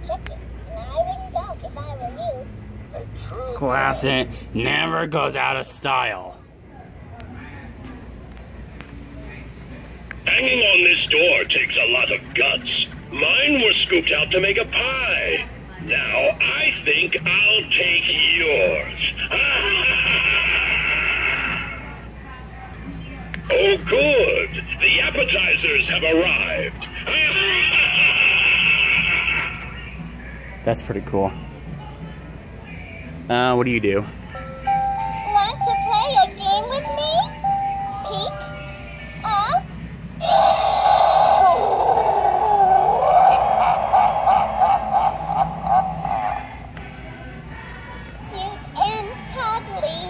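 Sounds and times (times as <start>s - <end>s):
high-pitched recorded scream: 40.2s - 46.6s.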